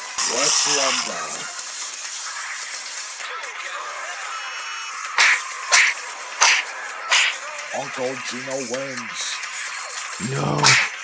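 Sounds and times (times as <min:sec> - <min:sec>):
noisy background: 0:00.0 - 0:04.0, 0:05.2 - 0:11.0
faint voices: 0:00.2 - 0:01.5, 0:07.1 - 0:09.4, 0:10.2 - 0:10.9.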